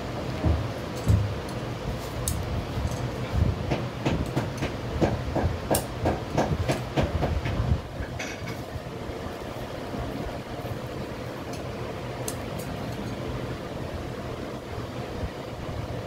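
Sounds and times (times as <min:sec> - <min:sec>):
steady background hum: 0:00.0 - 0:16.0.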